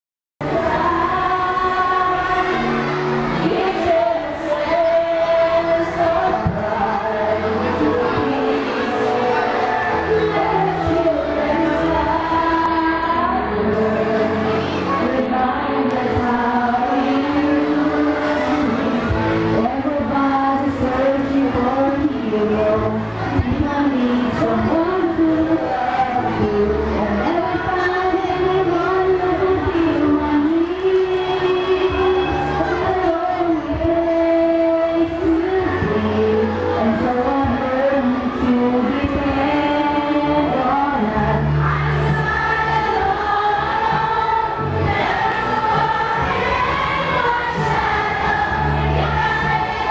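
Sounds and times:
low backing music: 0:00.4 - 0:49.9
women singing together: 0:00.4 - 0:49.9.

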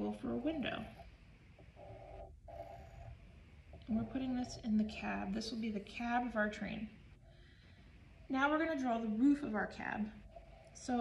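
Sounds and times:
pencil drawing on paper: 0:00.0 - 0:03.2
low room hum: 0:00.0 - 0:11.0.

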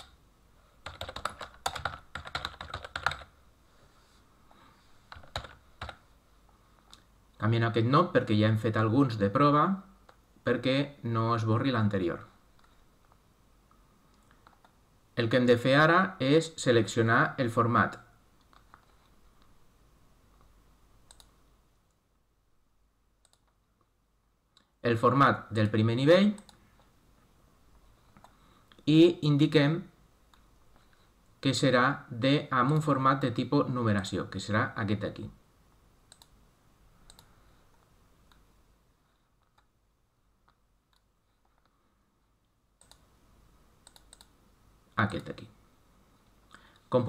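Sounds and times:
computer mouse clicks: 0:00.0 - 0:00.2, 0:14.1 - 0:14.8, 0:18.4 - 0:19.5, 0:20.4 - 0:22.0, 0:23.2 - 0:23.9, 0:26.3 - 0:26.9, 0:28.1 - 0:28.8, 0:36.1 - 0:36.4, 0:37.0 - 0:38.5, 0:42.8 - 0:43.1, 0:43.8 - 0:44.4
low hiss: 0:00.0 - 0:47.0
man speaking: 0:07.4 - 0:12.4, 0:15.2 - 0:18.1, 0:24.8 - 0:26.5, 0:28.8 - 0:30.0, 0:31.4 - 0:35.4, 0:45.0 - 0:45.6.

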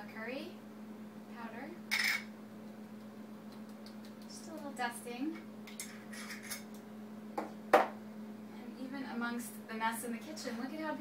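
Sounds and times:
low steady hum: 0:00.0 - 0:11.0
kitchen utensil clatter: 0:05.7 - 0:06.7.

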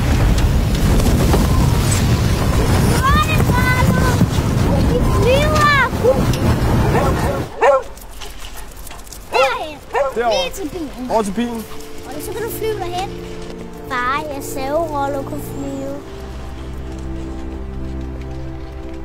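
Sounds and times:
rushing wind: 0:00.0 - 0:15.0
voices: 0:02.8 - 0:07.7, 0:09.2 - 0:13.2
child shouting excitedly: 0:02.9 - 0:04.2, 0:04.8 - 0:05.9, 0:09.3 - 0:10.8.

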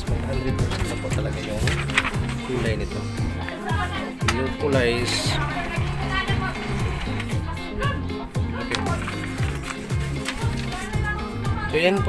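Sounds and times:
bass line: 0:00.0 - 0:11.8
music with steady beat: 0:00.0 - 0:12.0.

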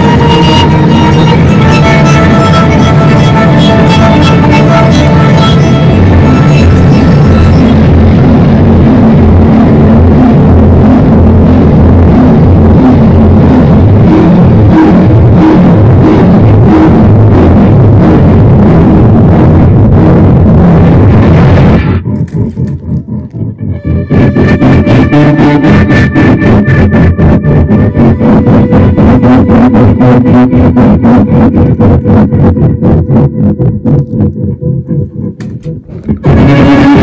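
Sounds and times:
fast repeating pulses: 0:00.0 - 0:09.6, 0:13.0 - 0:37.0
distorted amplified violin: 0:00.0 - 0:37.0.

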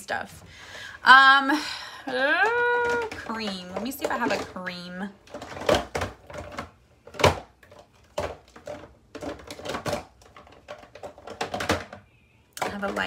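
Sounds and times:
plastic bottles clacking together: 0:02.1 - 0:13.0.

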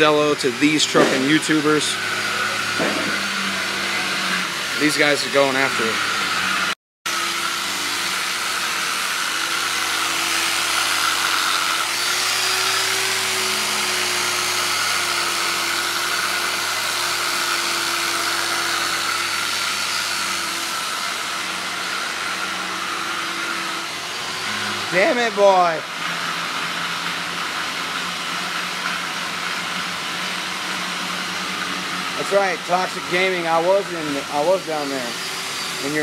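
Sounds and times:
electric polisher whining: 0:00.0 - 0:36.0.

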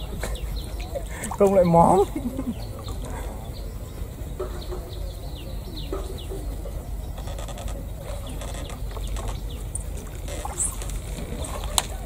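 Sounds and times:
low clucking calls: 0:00.0 - 0:12.0
low outdoor rumble: 0:00.0 - 0:12.0.

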